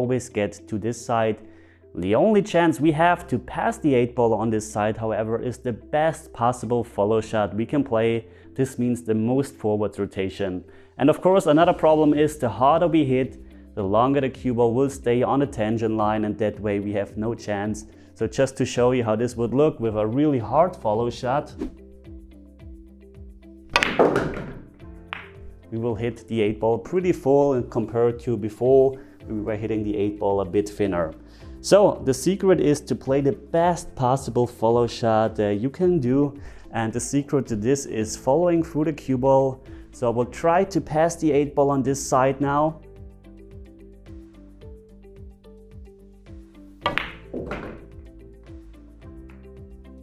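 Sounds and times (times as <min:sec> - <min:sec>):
quiet background music: 0:00.0 - 0:50.0
pool cue striking ball: 0:23.7 - 0:25.5, 0:46.8 - 0:48.1
pool balls cracking together: 0:23.8 - 0:25.4, 0:46.9 - 0:47.9.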